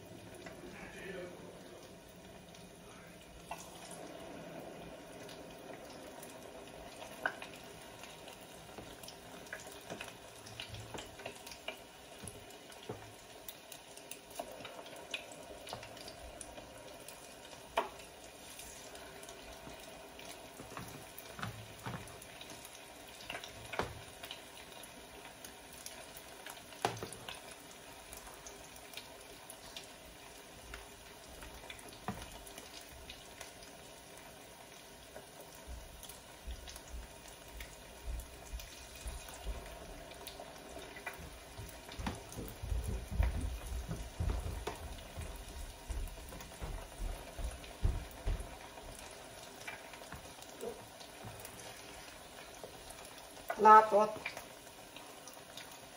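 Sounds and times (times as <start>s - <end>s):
food hissing and crackling in pot: 0.0s - 55.9s.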